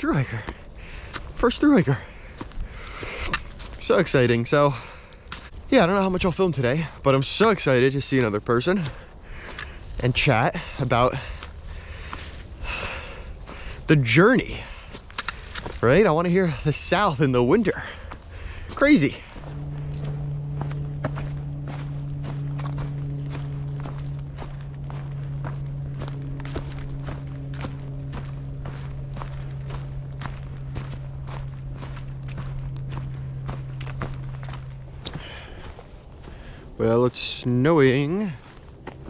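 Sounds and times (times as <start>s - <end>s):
steady low hum: 0.0s - 39.0s
footsteps crunching dry leaves: 0.1s - 39.0s.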